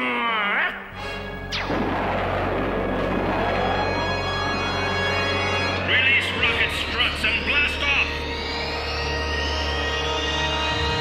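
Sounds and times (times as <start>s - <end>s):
ominous orchestral cartoon music: 0.0s - 11.0s
slowly rising whine: 1.5s - 7.5s.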